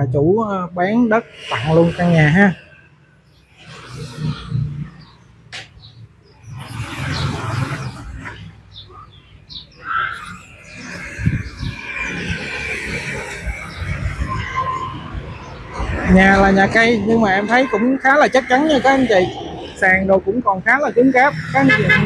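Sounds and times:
highway traffic passing: 0.0s - 22.0s
motorbikes passing: 0.0s - 22.0s.

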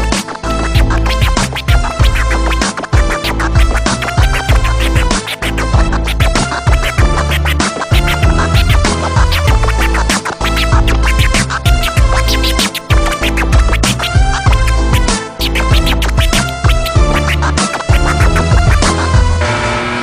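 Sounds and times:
hip hop beat with heavy bass: 0.0s - 19.4s
turntable scratching: 0.0s - 19.4s.

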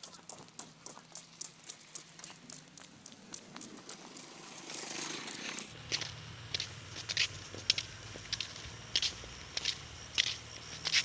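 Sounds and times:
footsteps on a path: 0.0s - 11.0s
low steady rumble: 5.7s - 11.0s.

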